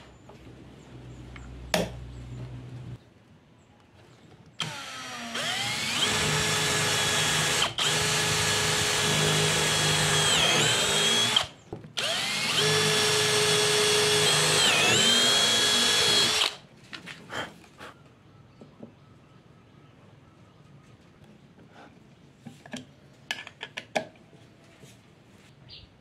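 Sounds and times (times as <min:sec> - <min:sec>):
electric drill boring into plywood: 0:04.6 - 0:16.6.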